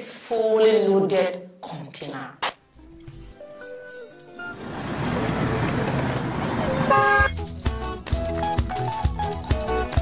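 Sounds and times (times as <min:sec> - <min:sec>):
road traffic noise: 0:04.0 - 0:10.0.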